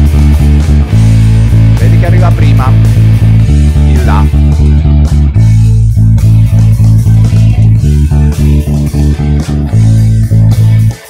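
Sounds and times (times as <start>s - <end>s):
backing track with drums: 0.0s - 11.0s
electric bass riff: 0.0s - 11.0s.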